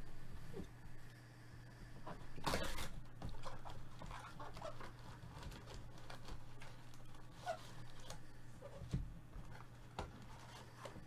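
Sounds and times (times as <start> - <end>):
foil card packs rustling: 2.2 - 11.0.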